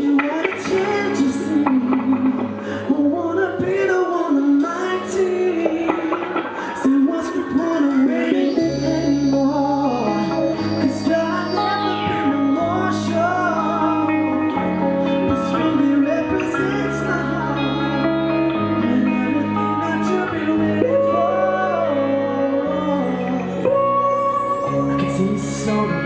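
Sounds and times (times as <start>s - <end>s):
bass notes: 0.0s - 26.0s
drums: 0.0s - 26.0s
electric guitar: 0.0s - 26.0s
man singing: 0.0s - 26.0s
piano: 0.0s - 26.0s.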